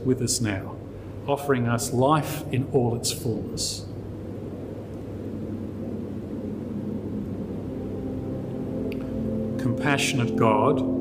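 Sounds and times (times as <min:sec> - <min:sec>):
faint hum: 0:00.0 - 0:11.0
steady low rumble: 0:00.0 - 0:11.0.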